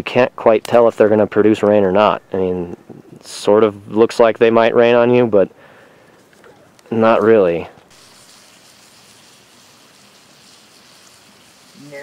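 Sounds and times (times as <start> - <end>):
light drizzle hiss: 0.0 - 12.0.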